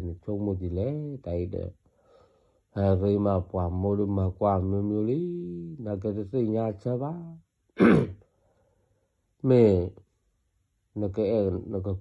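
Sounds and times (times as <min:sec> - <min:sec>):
spoken syllable: 0:00.0 - 0:01.7, 0:02.8 - 0:08.0, 0:09.4 - 0:10.0, 0:11.0 - 0:12.0
person clearing throat: 0:07.8 - 0:08.2.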